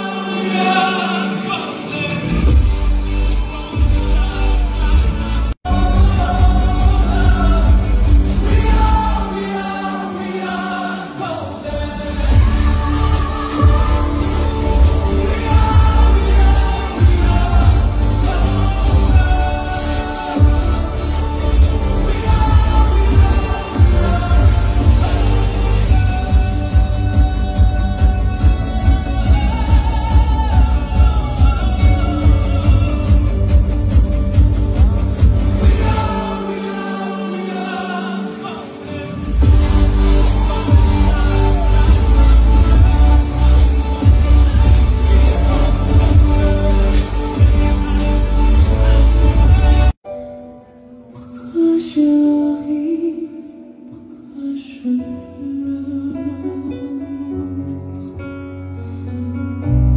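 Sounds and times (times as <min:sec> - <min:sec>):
man singing: 0:00.0 - 0:50.0, 0:51.0 - 0:58.9
live pop concert music: 0:00.0 - 0:59.9
loud amplified backing track: 0:00.0 - 0:59.9.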